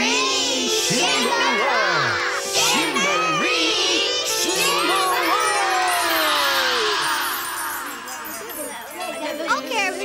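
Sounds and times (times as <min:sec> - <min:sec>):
magic sparkle shimmer with falling glide: 0:04.3 - 0:09.5.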